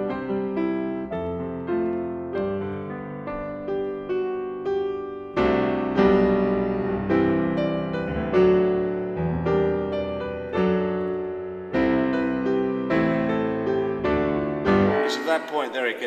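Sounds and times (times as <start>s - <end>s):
grand piano chords: 0.0s - 16.0s.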